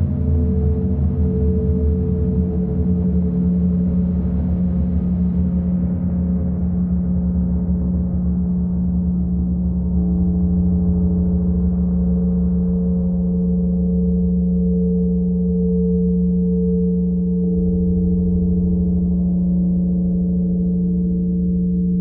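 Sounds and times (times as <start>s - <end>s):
low pulsing synthesizer drone: 0.0s - 22.0s
crystal singing bowls ringing: 8.1s - 22.0s.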